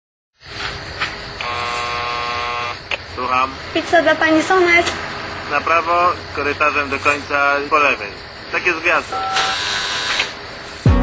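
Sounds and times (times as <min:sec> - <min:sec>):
low background hum: 0:00.5 - 0:10.9
door intercom buzzer: 0:01.4 - 0:02.9, 0:09.1 - 0:10.4.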